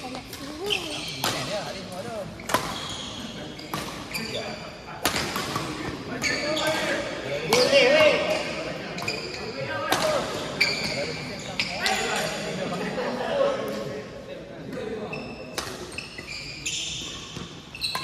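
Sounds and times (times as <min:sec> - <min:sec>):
rackets hitting shuttlecock: 0:02.4 - 0:02.9, 0:03.7 - 0:04.3, 0:05.0 - 0:06.8, 0:09.9 - 0:10.9, 0:15.5 - 0:15.9.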